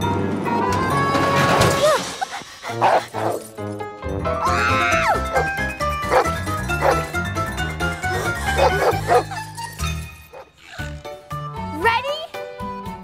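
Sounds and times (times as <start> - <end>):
lively background music: 0.0 - 13.0
cartoon dog barking: 6.1 - 7.0, 8.2 - 9.3.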